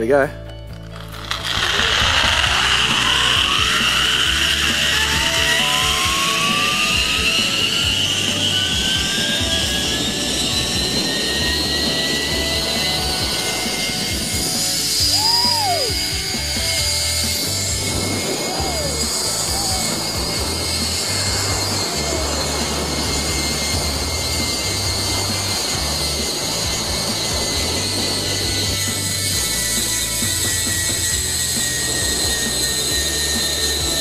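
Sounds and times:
zipline pulley whine: 0.7s - 34.0s
cable hiss and rushing air: 1.0s - 34.0s.

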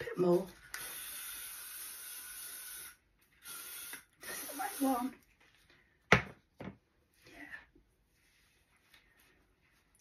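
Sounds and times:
aerosol hairspray hissing: 0.7s - 5.2s.

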